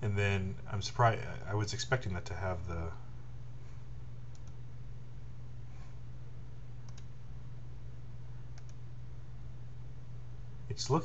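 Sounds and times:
steady low hum: 0.0 - 11.0
computer mouse clicks: 4.3 - 4.6, 6.8 - 7.2, 8.5 - 8.8.

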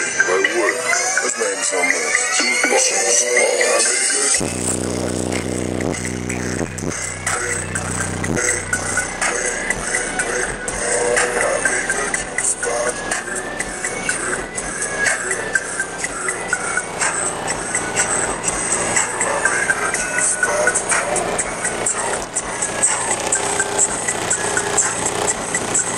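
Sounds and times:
bass-heavy hip-hop through subwoofers: 4.3 - 25.9.

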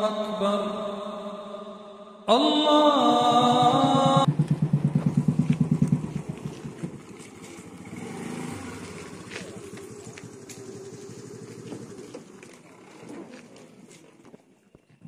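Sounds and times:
motorcycle engine: 3.2 - 14.4.

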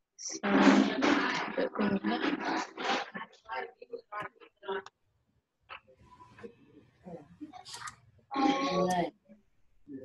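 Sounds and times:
person talking over video call: 0.2 - 4.9, 5.7 - 9.2.

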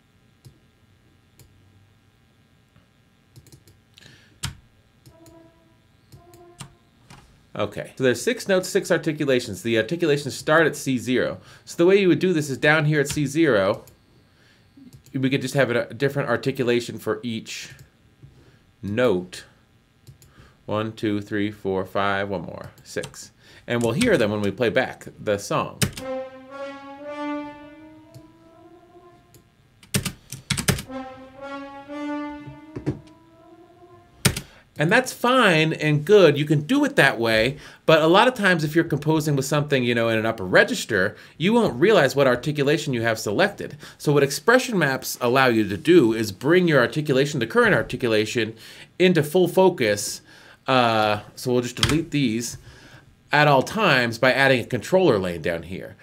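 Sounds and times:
french horn notes: 5.1 - 7.0, 25.9 - 29.5, 30.8 - 34.3.

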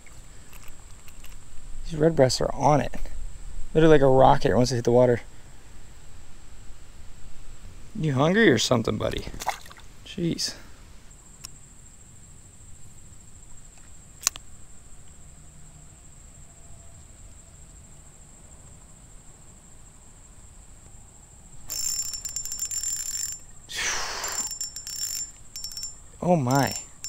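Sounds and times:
sharp click: 13.8 - 14.4
faint steady high tone: 21.6 - 27.0
fishing reel whirring and clicking: 21.7 - 23.5, 24.2 - 27.0.

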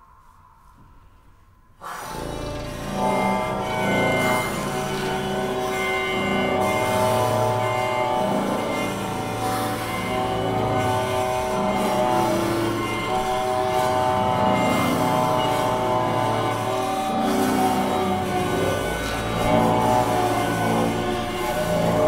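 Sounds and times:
chamber ensemble dissonant chord: 3.0 - 22.0.

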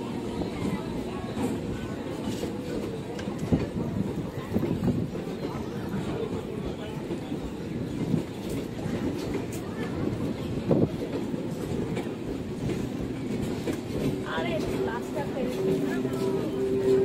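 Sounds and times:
train rumbling past on rails: 0.0 - 17.0.

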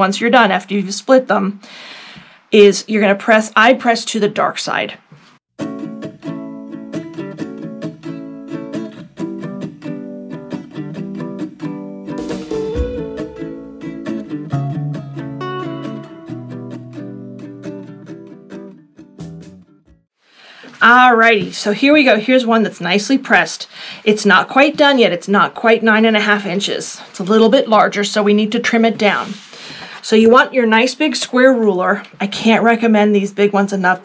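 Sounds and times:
plucked string instrumental music: 5.6 - 20.0.

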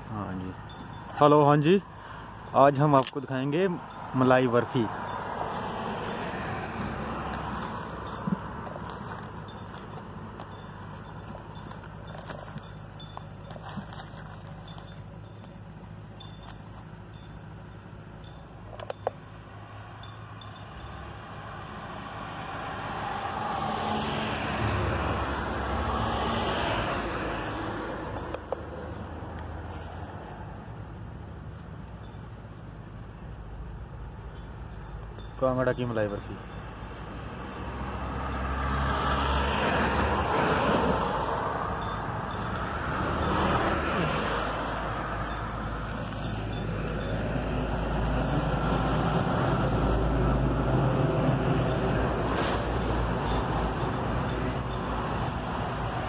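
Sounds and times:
road traffic noise: 0.0 - 56.0
vehicle engine rumble passing: 3.4 - 56.0.

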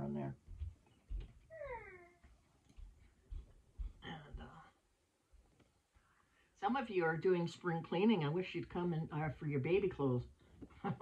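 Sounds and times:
cat meowing: 1.5 - 2.2.

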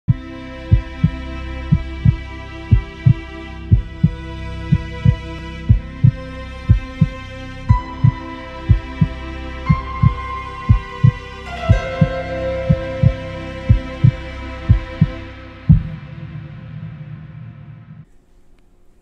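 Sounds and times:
heartbeat thumps: 0.1 - 18.1
music of held chords: 0.1 - 18.1.

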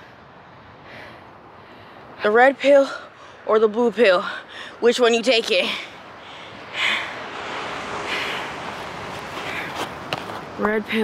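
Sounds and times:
outdoor noise rush: 0.0 - 11.0
person breathing close: 5.6 - 10.0.

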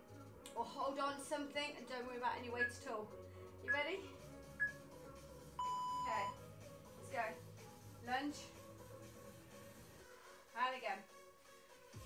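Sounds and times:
long low timer beep: 5.6 - 6.4.

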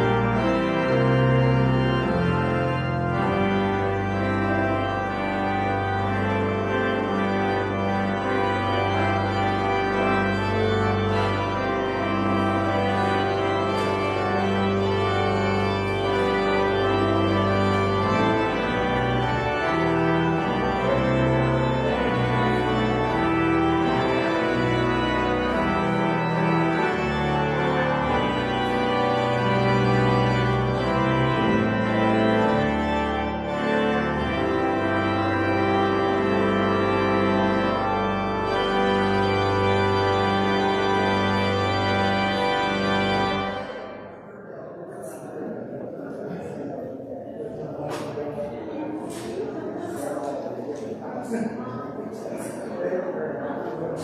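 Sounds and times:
church organ chords: 0.0 - 46.0, 47.6 - 54.0.

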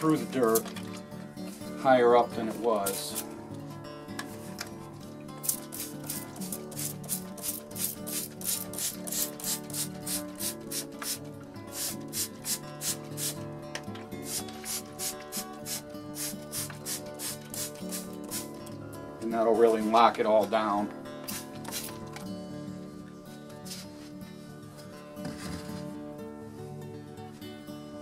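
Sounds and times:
background music: 0.0 - 28.0
spray bottle squirting: 5.4 - 13.4, 14.2 - 18.6, 21.3 - 22.0.

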